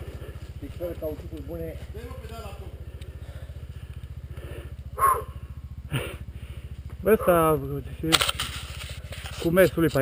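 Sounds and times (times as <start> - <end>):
dirt bike engine idling: 0.0 - 10.0.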